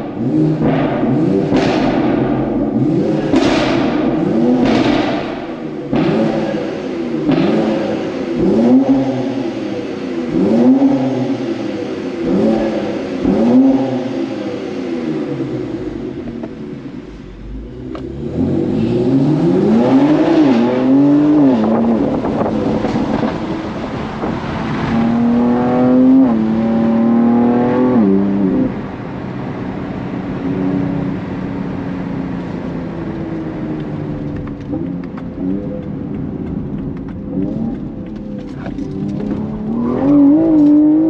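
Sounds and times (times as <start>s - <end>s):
car engine accelerating hard: 0.0s - 41.0s.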